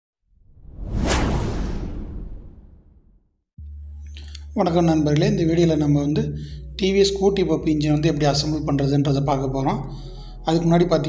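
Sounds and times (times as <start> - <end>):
whoosh sound effect: 0.4 - 3.2
low rumble: 0.4 - 3.9.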